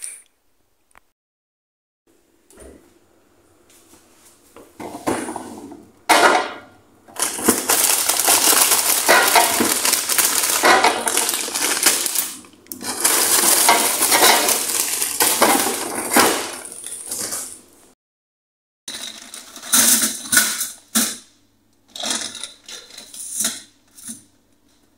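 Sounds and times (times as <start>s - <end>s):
items knocking against drawer: 4.8s - 12.1s, 12.8s - 17.6s
frozen food packaging crinkling: 7.1s - 17.6s.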